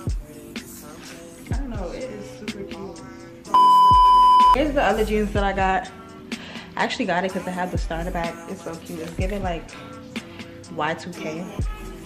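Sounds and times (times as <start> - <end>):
background music: 0.0 - 12.0
high censor bleep: 3.6 - 4.6.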